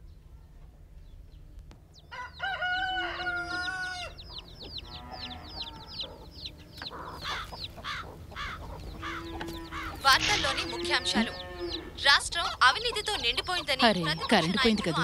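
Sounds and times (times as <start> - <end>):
chickens clucking: 1.9 - 15.0
rooster crowing: 2.1 - 4.2.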